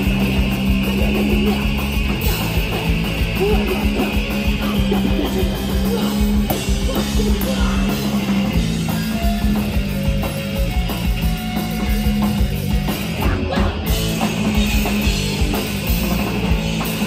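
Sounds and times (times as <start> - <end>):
punk band playing: 0.0 - 17.0.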